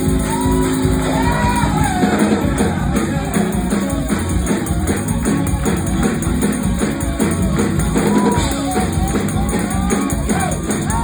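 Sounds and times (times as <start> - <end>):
held electric keyboard chord: 0.0 - 11.0.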